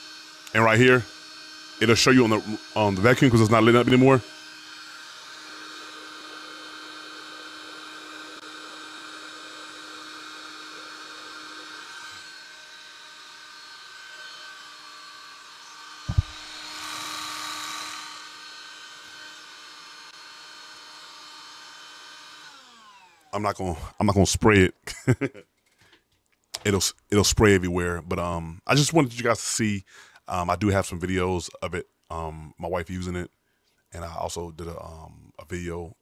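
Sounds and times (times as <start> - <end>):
spot cleaner motor whining: 0.0 - 23.4
knock: 16.1 - 16.4.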